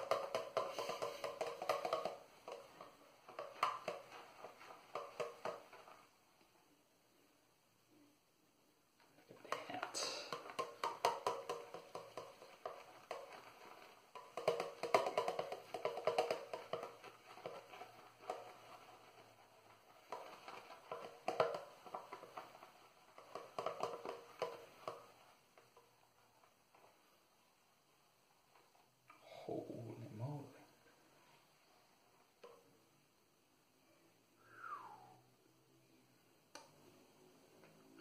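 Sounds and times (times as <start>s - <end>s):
shaving brush scrubbing soap: 10.2s - 26.0s.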